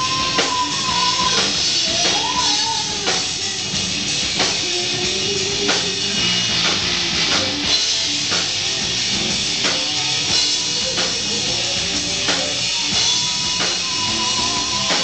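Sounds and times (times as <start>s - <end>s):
drum kit beat: 0.0s - 15.0s
rock band playing: 0.0s - 15.0s.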